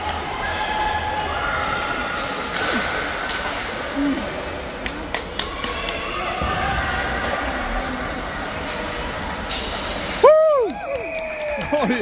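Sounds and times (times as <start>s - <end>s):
ice rink crowd ambience: 0.0s - 12.0s.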